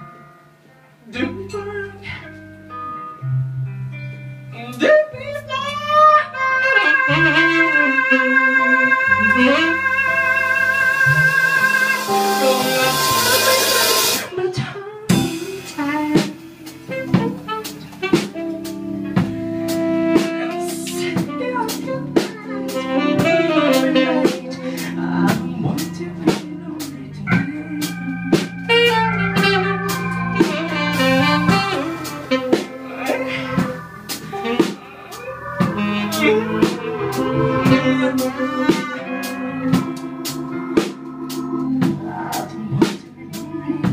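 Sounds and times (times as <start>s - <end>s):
keyboard: 0.0s - 43.9s
electric guitar: 5.2s - 43.9s
cymbal swell: 6.4s - 14.4s, 27.0s - 39.1s
drum kit: 6.6s - 43.9s.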